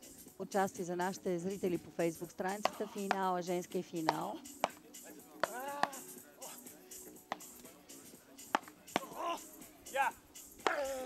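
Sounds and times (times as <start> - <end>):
faint background music: 0.0 - 11.0
paddles striking ball: 2.6 - 3.3, 4.0 - 4.8, 5.4 - 6.1, 7.3 - 7.6, 8.5 - 9.2.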